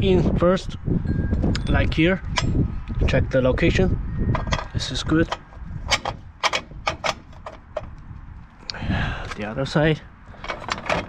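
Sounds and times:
bolt clicking against metal bracket: 0:04.4 - 0:08.0.

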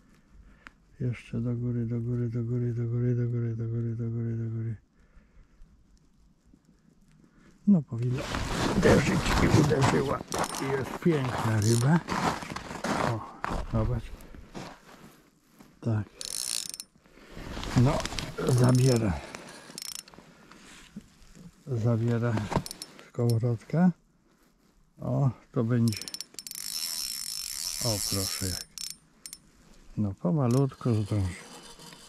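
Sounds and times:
faint small ticks: 0:00.0 - 0:01.0, 0:04.8 - 0:07.6, 0:16.2 - 0:17.1, 0:18.0 - 0:21.5, 0:25.9 - 0:29.8
fishing line handling: 0:09.6 - 0:11.9, 0:16.2 - 0:20.2, 0:25.9 - 0:29.5
reel ratchet clicks: 0:10.4 - 0:10.6, 0:11.6 - 0:11.8, 0:16.2 - 0:16.9, 0:18.6 - 0:20.1, 0:22.6 - 0:23.4, 0:25.8 - 0:29.5, 0:30.5 - 0:32.0.

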